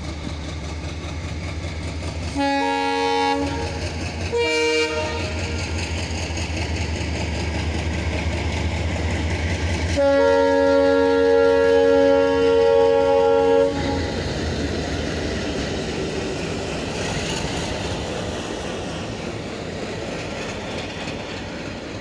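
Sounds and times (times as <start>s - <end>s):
locomotive engine rumble: 0.0s - 22.0s
locomotive horn blasts: 2.4s - 5.6s, 10.0s - 14.1s.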